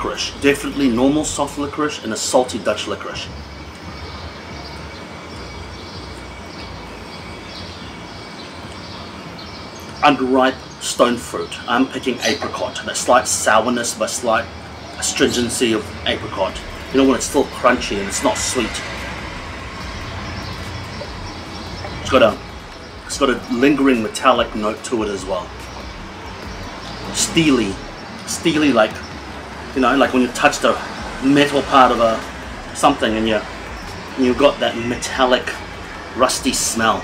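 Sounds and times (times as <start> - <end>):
low rumble of distant traffic: 0.0 - 37.0.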